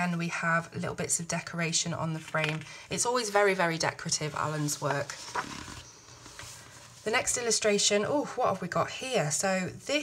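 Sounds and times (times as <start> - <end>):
paper page rustling: 2.2 - 7.2
page flap: 5.2 - 6.5.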